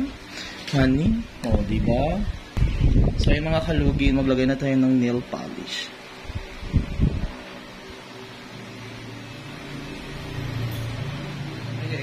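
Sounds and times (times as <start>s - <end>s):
small motor whirring hum: 5.3s - 12.0s.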